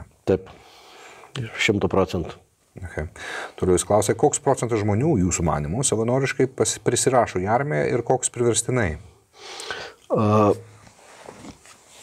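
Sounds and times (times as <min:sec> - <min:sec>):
man breathing in: 0:00.6 - 0:01.3, 0:09.3 - 0:10.1.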